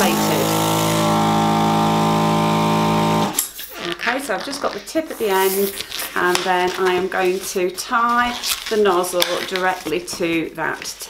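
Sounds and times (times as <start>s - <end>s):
balloon inflator motor humming: 0.0s - 3.4s.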